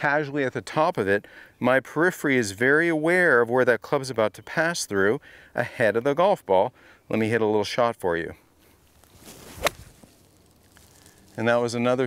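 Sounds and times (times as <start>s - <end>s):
golf club swishing: 8.6s - 11.4s
golf club striking ball: 9.2s - 10.1s.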